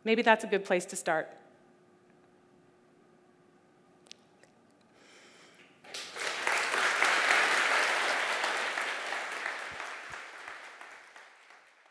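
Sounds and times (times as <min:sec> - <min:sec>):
large audience applauding: 0:05.9 - 0:11.9.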